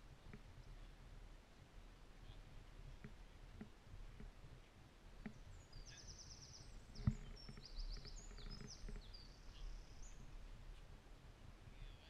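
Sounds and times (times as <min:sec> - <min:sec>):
songbirds chirping and trilling: 0:05.2 - 0:10.8.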